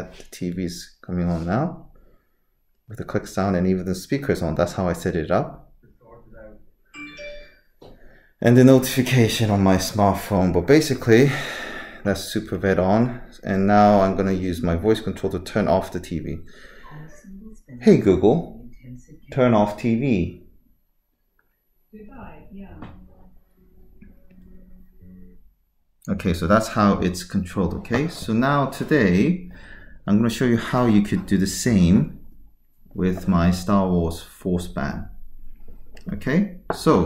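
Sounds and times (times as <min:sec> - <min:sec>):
smartphone notification chime: 0:07.0 - 0:07.7
low tones from television: 0:13.1 - 0:20.5, 0:21.8 - 0:29.5.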